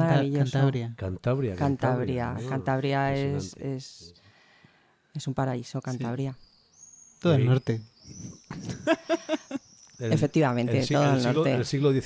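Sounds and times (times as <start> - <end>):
woman laughing: 8.5 - 9.6.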